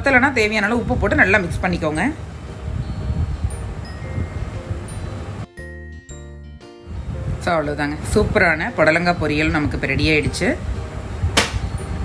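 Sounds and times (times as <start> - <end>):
faint high chime-like tinkles: 2.8 - 5.2.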